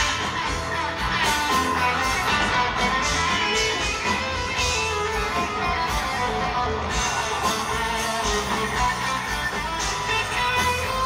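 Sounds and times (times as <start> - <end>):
bass guitar: 0.0 - 11.0
drums: 0.0 - 11.0
electric guitars: 0.0 - 11.0
keyboards: 0.0 - 11.0.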